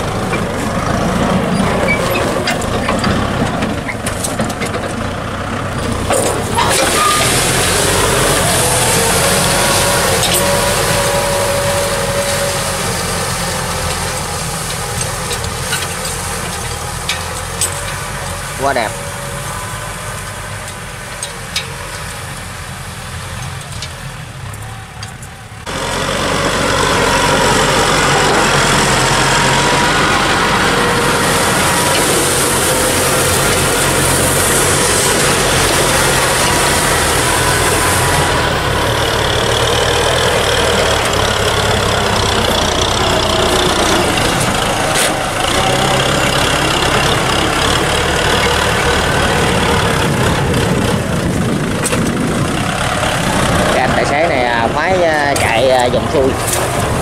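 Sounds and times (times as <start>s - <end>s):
tractor diesel engine under load: 0.0s - 57.0s.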